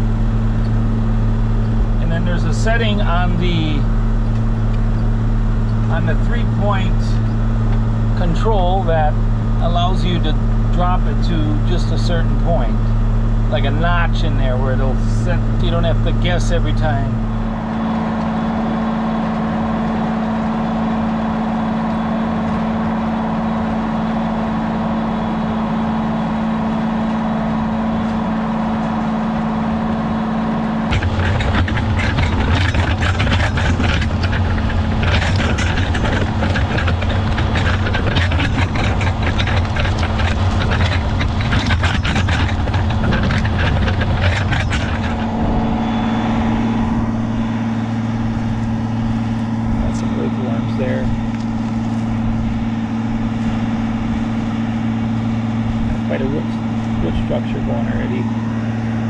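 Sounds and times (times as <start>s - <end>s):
plow rattling and soil crackling: 0.0s - 59.0s
tractor diesel engine: 0.0s - 59.0s.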